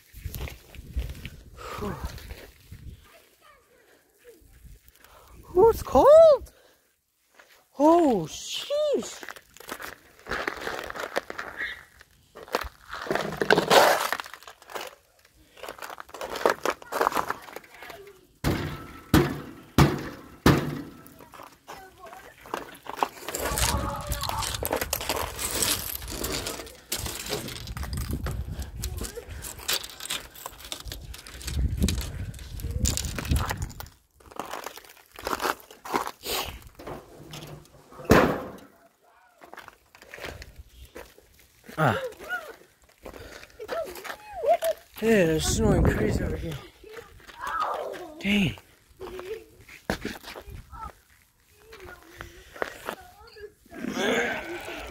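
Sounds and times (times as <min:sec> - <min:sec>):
ice cracking and shattering: 0:09.1 - 0:18.2, 0:22.1 - 0:28.3, 0:29.0 - 0:36.4.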